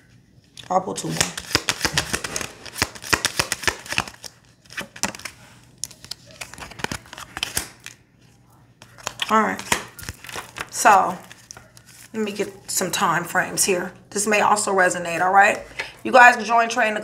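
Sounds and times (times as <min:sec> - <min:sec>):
cards being shuffled: 0:00.4 - 0:08.0, 0:08.8 - 0:12.5.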